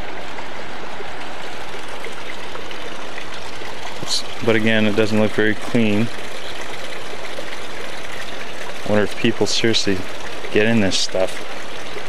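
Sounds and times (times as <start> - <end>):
water rushing from small waterfall: 0.0 - 12.0.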